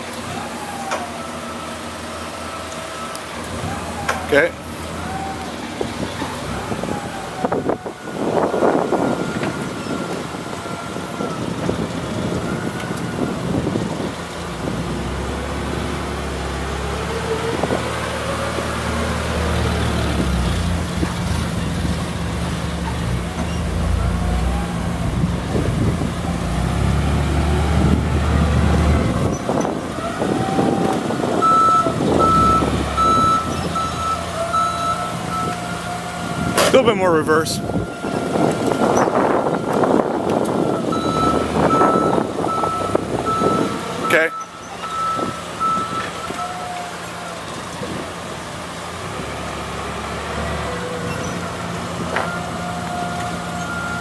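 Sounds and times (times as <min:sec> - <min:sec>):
forklift engine running: 0:00.0 - 0:54.0
reverse alarm beeping: 0:31.4 - 0:35.6, 0:40.6 - 0:46.4.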